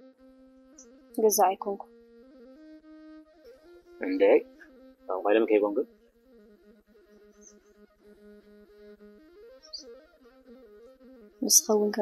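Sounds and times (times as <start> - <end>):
man speaking: 4.0 - 4.5, 5.1 - 5.8.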